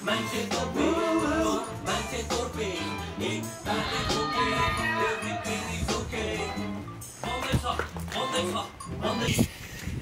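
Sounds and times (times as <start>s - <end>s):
background music: 0.0s - 9.8s
people calling out and talking: 0.3s - 9.5s.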